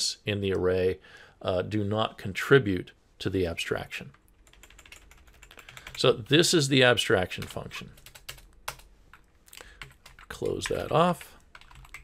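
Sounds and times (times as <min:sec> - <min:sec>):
keyboard keys clicking: 0:04.5 - 0:06.0, 0:11.5 - 0:12.0.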